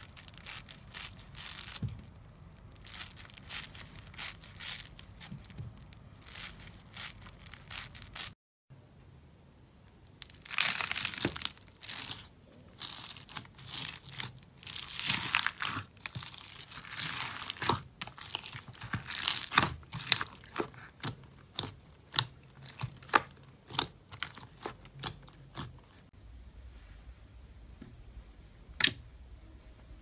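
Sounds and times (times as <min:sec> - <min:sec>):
crunchy slime crackling: 0:00.0 - 0:08.4, 0:10.1 - 0:26.1.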